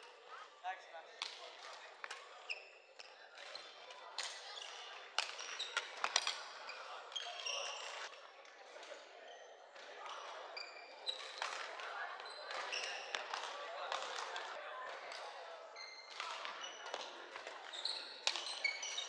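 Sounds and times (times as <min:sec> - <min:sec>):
voices chattering: 0:00.0 - 0:19.0
shoes squeaking on wooden court: 0:02.4 - 0:08.1, 0:15.8 - 0:19.0.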